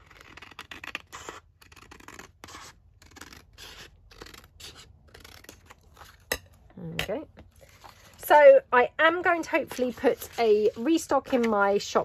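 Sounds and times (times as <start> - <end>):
scissors cutting paper: 0.0 - 6.4, 9.3 - 12.0.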